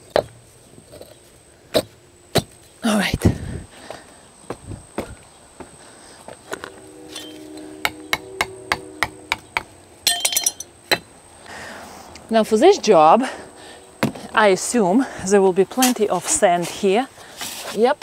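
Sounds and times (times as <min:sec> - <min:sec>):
metal clinks: 0:10.0 - 0:11.0.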